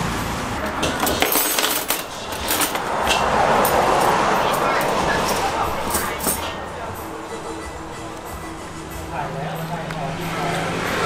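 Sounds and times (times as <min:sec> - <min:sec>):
metal wire hooks clinking: 0:00.8 - 0:06.6.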